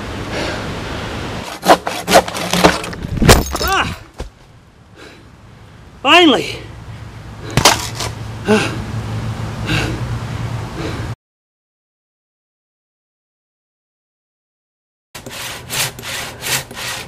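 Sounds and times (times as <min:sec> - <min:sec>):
sharp wooden knocks: 0:01.6 - 0:03.6, 0:07.6 - 0:08.1
man groaning: 0:03.6 - 0:04.1, 0:08.4 - 0:08.9.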